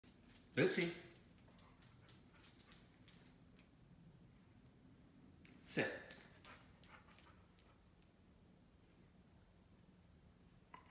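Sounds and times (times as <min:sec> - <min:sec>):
dog claws clicking on wood floor: 0:00.0 - 0:03.8, 0:06.0 - 0:08.1.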